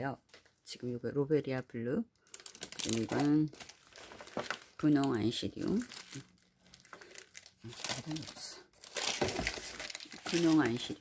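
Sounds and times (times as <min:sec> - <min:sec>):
plastic wrapping crinkling: 0:02.2 - 0:11.0.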